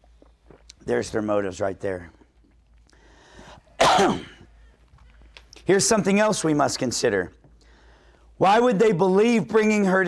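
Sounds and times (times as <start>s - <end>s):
man coughing: 3.8s - 4.6s.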